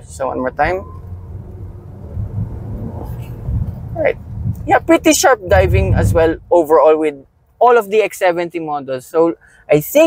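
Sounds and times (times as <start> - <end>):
engine and road rumble in car: 0.0 - 7.5.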